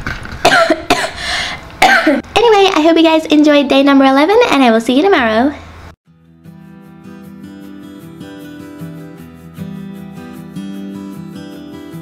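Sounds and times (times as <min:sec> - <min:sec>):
woman coughing: 0:00.5 - 0:02.2.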